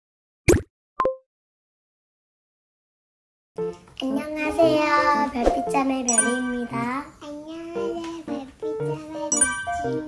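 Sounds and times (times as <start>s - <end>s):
cartoon pop: 0.5s - 1.2s
cartoon plop with ringing tone: 6.1s - 6.7s, 9.3s - 10.0s.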